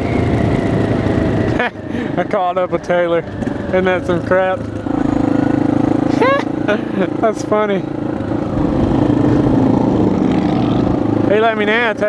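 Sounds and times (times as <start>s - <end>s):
motorcycle engine running: 0.0s - 12.0s
person laughing: 1.5s - 2.3s, 6.1s - 7.3s.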